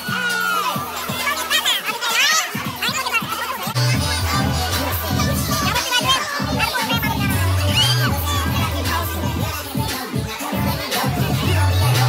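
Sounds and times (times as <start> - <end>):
loud party music with bass: 0.0 - 12.0
people shouting and talking: 0.0 - 12.0.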